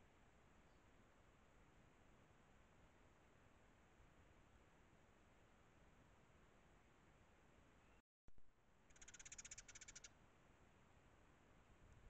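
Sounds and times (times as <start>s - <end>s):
sparrows chattering: 8.9s - 10.1s.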